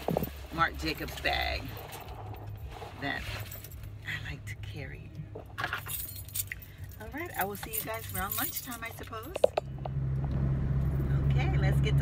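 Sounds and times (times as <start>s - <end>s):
low car hum: 0.0s - 12.0s
metal jingling: 5.5s - 9.8s.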